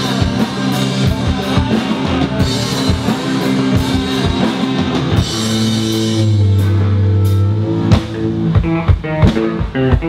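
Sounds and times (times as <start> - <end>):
rock band sustained chord: 0.0 - 10.0.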